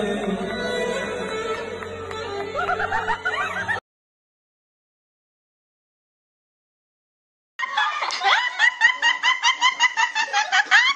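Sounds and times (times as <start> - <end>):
boy laughing: 2.5 - 3.8, 7.7 - 10.9.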